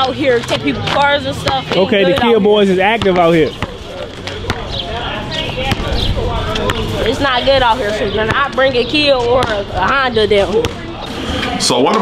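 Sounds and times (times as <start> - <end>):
basketball bouncing on asphalt: 0.0 - 11.1
voices in background: 0.0 - 12.0.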